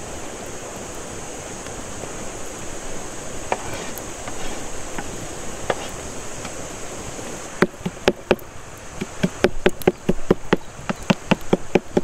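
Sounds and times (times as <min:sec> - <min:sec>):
cleaver chopping on wooden board: 0:09.0 - 0:12.0.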